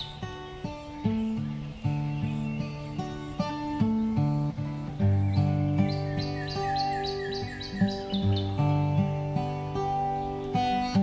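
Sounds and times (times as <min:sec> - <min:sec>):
acoustic guitar chords: 0:00.0 - 0:11.0
songbird chirping: 0:00.0 - 0:11.0.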